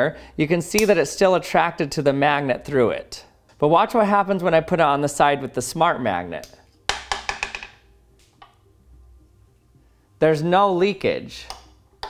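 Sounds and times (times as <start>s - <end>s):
steel ball bouncing on hard surface: 6.9s - 7.8s.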